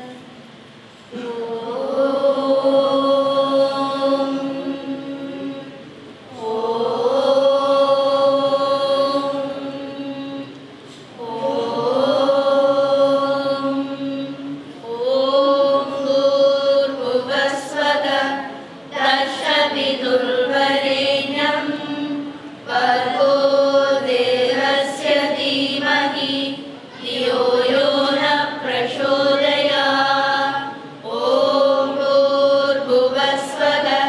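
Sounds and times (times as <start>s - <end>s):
group chanting in unison: 1.1s - 10.5s, 11.2s - 34.0s.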